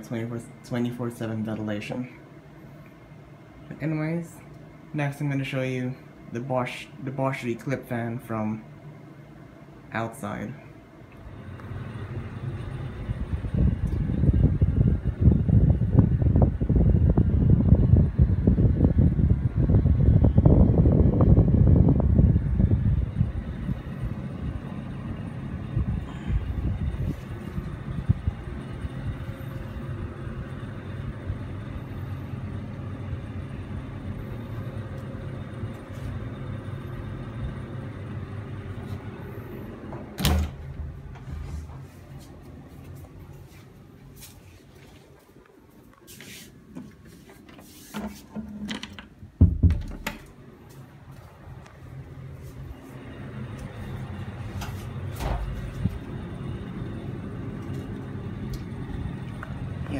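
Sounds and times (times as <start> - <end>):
fan exhaust buffeting microphone: 0.0 - 59.9
steady fan hum: 0.0 - 59.9
door shutting with a bang: 39.9 - 41.3, 49.4 - 50.2, 55.1 - 55.7.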